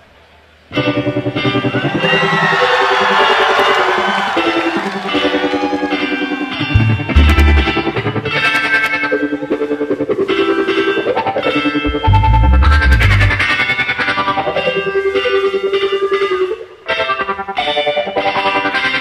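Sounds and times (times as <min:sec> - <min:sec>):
electric guitar: 0:00.7 - 0:19.0
live band music: 0:06.5 - 0:16.6
heavy low bass notes: 0:06.7 - 0:08.5, 0:11.9 - 0:14.0.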